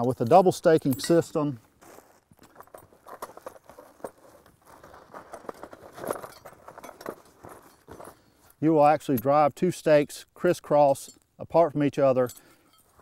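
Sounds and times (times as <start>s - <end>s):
metal trap chain clinking: 0.0s - 1.4s, 5.3s - 8.1s.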